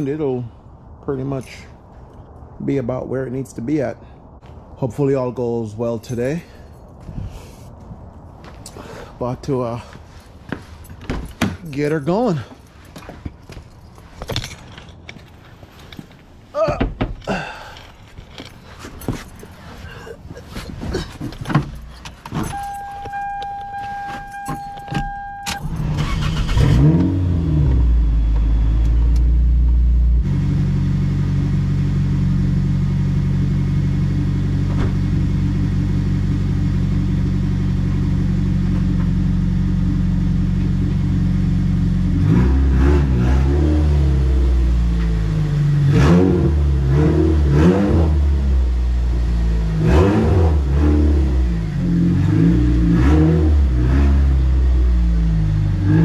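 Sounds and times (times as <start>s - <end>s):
car engine starting and revving: 22.4s - 56.0s
short beep: 22.5s - 25.8s.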